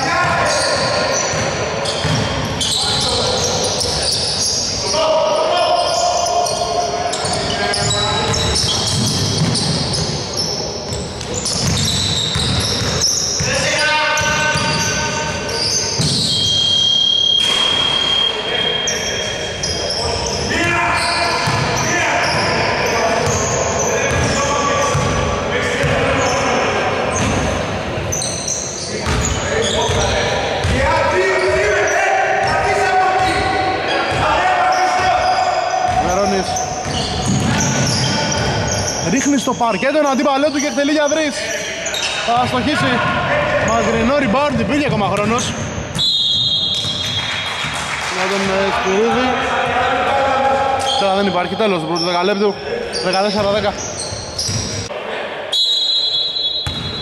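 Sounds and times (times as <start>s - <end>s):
players' voices: 0.0s - 57.0s
basketball bouncing on wooden floor: 2.0s - 2.3s, 11.2s - 13.1s, 56.6s - 57.0s.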